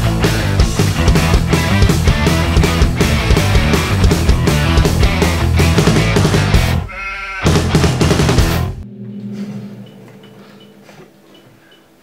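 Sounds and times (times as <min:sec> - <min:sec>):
bass guitar ringing: 0:00.0 - 0:06.9, 0:07.5 - 0:12.0
electric guitar ringing: 0:06.6 - 0:12.0.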